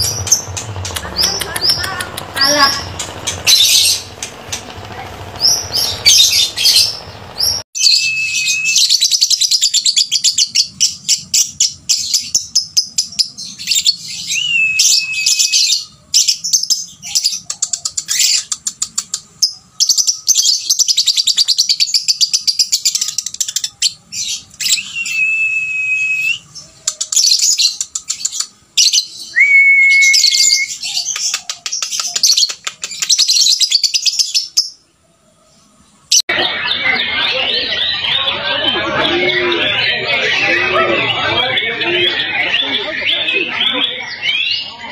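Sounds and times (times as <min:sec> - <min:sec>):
lovebird trilled chattering: 0:00.0 - 0:07.6
bird whistled notes: 0:07.8 - 0:09.3, 0:29.2 - 0:30.8.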